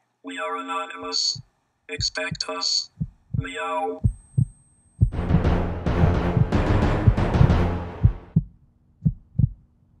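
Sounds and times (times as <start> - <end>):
faint steady hum: 0.0 - 5.2
heartbeat thumps: 1.4 - 9.6.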